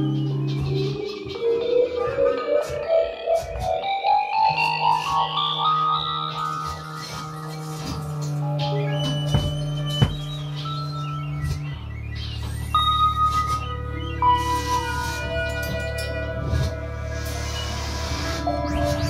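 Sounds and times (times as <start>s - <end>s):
experimental music: 0.0s - 19.0s
sustained low drone: 0.0s - 19.0s.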